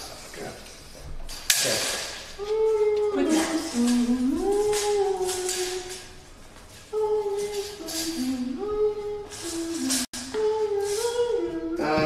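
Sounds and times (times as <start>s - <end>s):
person humming: 2.4s - 6.2s, 6.9s - 12.0s.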